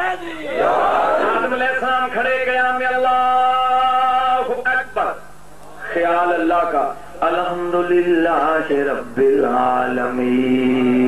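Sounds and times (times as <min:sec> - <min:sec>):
man chanting into a microphone: 0:01.4 - 0:05.0, 0:05.8 - 0:11.0.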